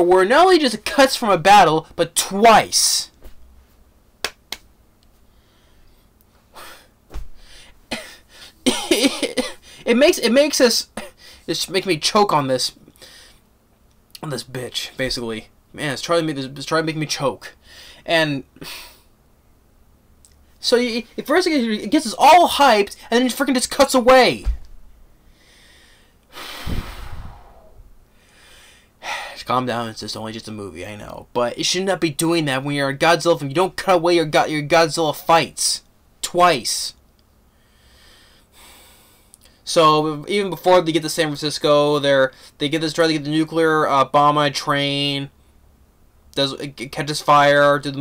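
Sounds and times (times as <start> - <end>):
finger snaps: 4.2 - 5.2
man exhaling heavily: 25.4 - 29.4.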